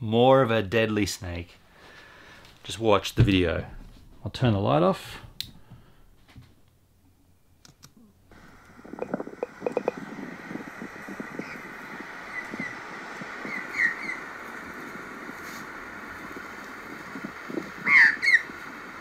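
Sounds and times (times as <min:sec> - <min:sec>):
steady outdoor hiss: 0:00.0 - 0:19.0
magpies squawking: 0:13.4 - 0:14.3, 0:17.8 - 0:18.5.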